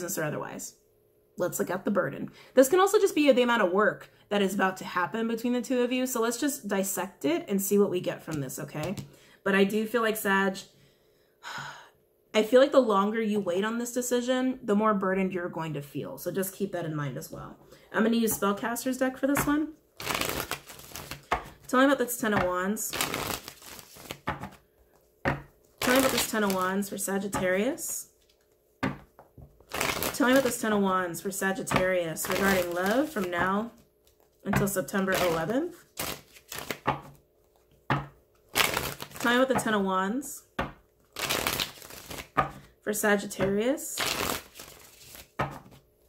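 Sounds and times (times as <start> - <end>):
cards being shuffled: 19.4 - 21.7, 22.3 - 27.6, 28.2 - 30.7, 31.7 - 39.4, 41.1 - 42.6, 43.4 - 45.9
cards sliding while shuffled: 23.0 - 25.1, 36.0 - 37.8, 44.1 - 45.8.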